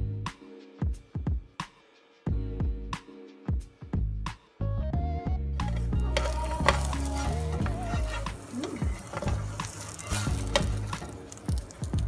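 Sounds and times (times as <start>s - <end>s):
background music: 0.0s - 12.0s
food sizzling in a pan: 5.7s - 12.0s
utensil clicking against pan: 5.7s - 12.0s.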